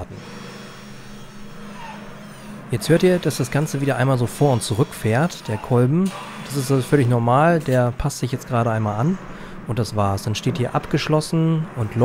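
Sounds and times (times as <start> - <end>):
electric motor whine: 0.0 - 5.6.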